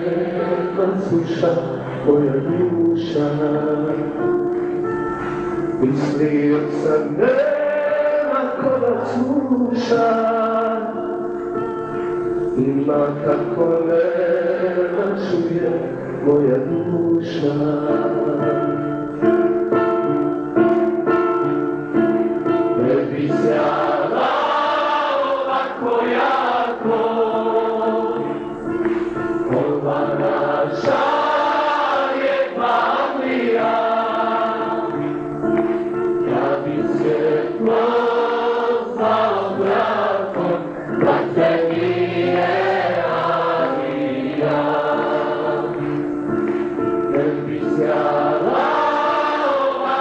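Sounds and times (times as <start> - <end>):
choir singing slow song: 0.0 - 2.2, 5.8 - 11.2, 12.6 - 16.0, 22.8 - 50.0.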